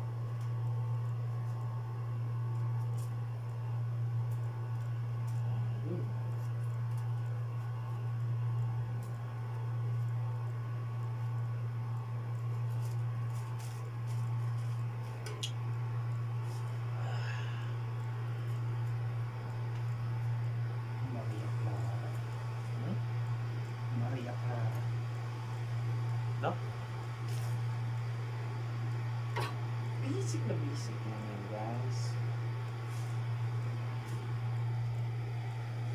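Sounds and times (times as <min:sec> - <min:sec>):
low hum: 0:00.0 - 0:35.9.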